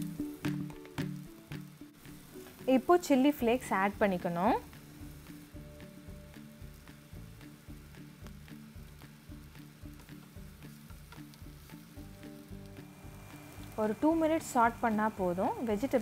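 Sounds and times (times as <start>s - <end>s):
background music with low beat: 0.0s - 2.8s, 3.4s - 16.0s
vegetables sizzling in frying pan: 0.0s - 16.0s.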